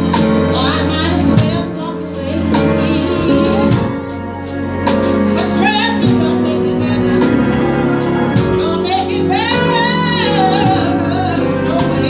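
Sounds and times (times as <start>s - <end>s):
woman singing gospel: 0.0s - 4.6s, 5.2s - 12.0s
organ accompaniment: 0.0s - 12.0s.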